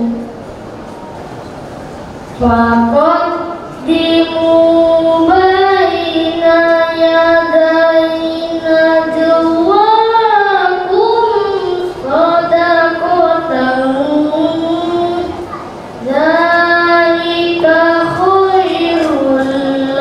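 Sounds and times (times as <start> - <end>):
boy chanting melodically: 0.0 - 0.3, 2.4 - 20.0.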